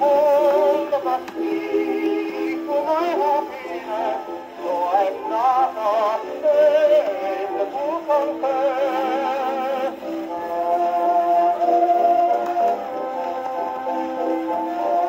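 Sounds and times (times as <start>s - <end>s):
old record playing popular music: 0.0s - 15.0s.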